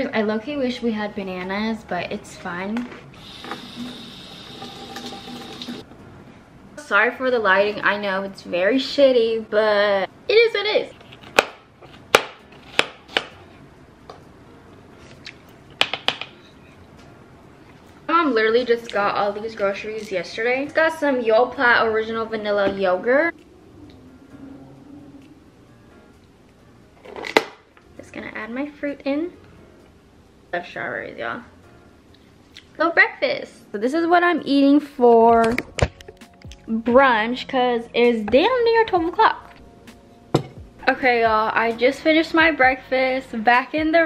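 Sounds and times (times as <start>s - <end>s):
faucet water splashing: 3.2s - 5.8s.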